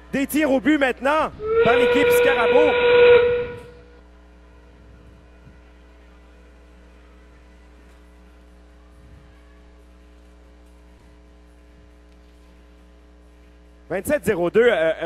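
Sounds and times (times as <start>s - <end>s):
faint mains hum: 2.7s - 15.0s.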